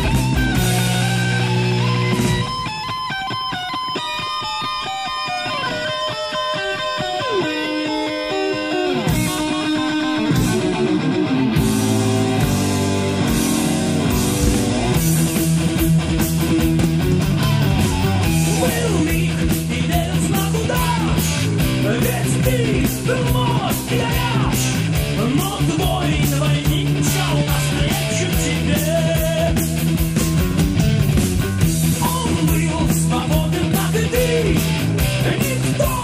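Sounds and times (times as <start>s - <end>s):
electric guitar lead line: 0.0s - 36.0s
heavy metal band playing: 0.0s - 36.0s.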